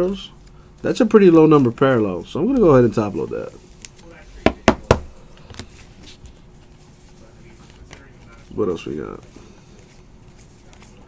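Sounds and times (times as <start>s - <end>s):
cards tapping on tabletop: 4.4s - 5.6s.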